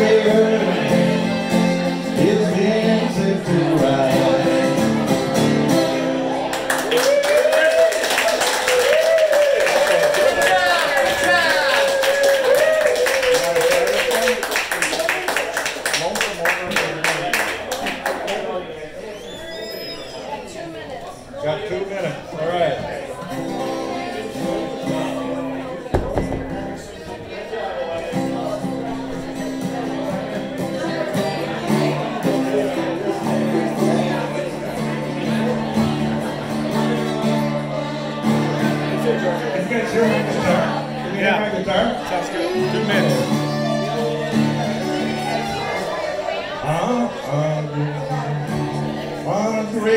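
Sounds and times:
acoustic guitar strumming: 0.0 - 6.7, 23.3 - 49.9
fiddle holding long notes: 42.0 - 46.1.

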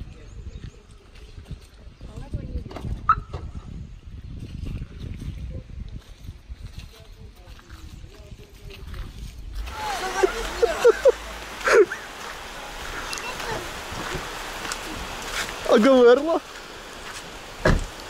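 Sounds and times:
wind buffeting microphone: 0.0 - 18.0
people talking: 9.6 - 14.2, 14.8 - 16.5
light rain hissing: 9.6 - 18.0.

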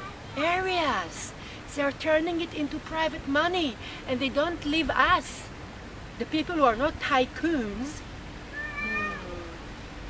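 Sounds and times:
cat meowing: 8.5 - 9.6.

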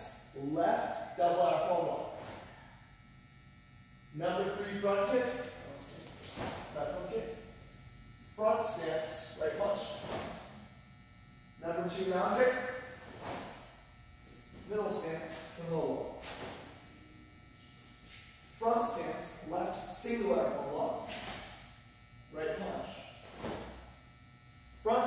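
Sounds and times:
man speaking: 0.0 - 2.3, 4.2 - 7.6, 8.3 - 10.5, 11.6 - 12.9, 14.6 - 16.6, 18.6 - 21.4, 22.3 - 23.2, 24.8 - 25.0.

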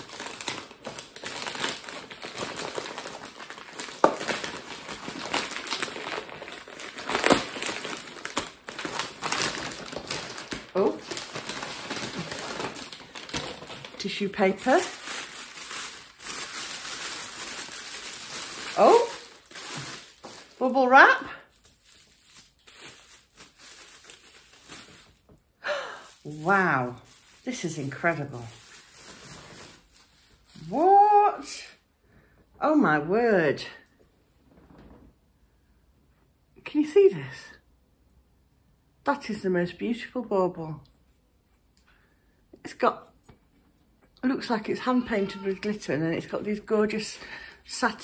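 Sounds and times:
wrapping paper tearing: 0.0 - 25.3, 26.0 - 30.7.

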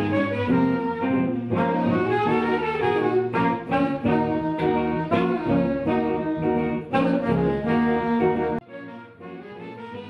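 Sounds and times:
electric bass: 0.0 - 8.6
electric guitar: 0.0 - 10.0
tenor saxophone melody: 0.0 - 10.0.

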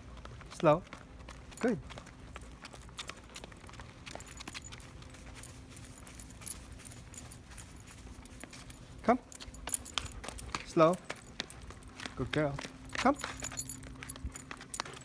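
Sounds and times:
dog boots tapping on concrete: 0.0 - 15.0.

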